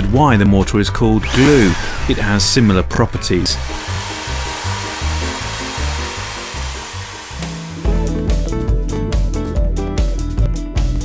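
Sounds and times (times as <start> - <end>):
background music with bass: 0.0 - 11.0
electric drill mixing mortar: 1.1 - 8.4.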